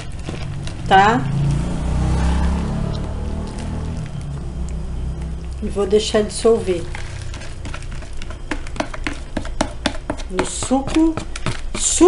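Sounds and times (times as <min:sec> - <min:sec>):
low steady hum: 0:00.0 - 0:12.0
plastic spoon tapping a plastic tub: 0:07.6 - 0:12.0.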